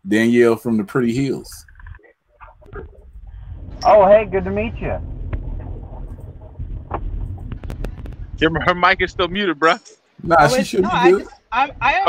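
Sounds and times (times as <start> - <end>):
faint car cabin rumble: 1.4 - 9.4.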